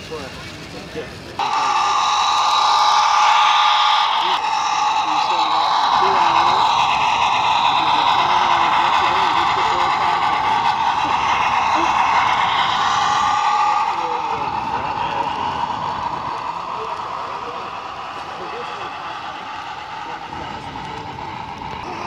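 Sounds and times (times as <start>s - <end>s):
faint whine: 0.0s - 22.0s
model train whirring on rails: 0.0s - 22.0s.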